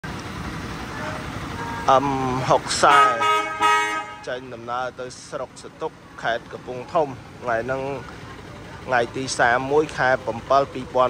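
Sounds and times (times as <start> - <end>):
diesel truck engine idling: 0.0 - 11.0.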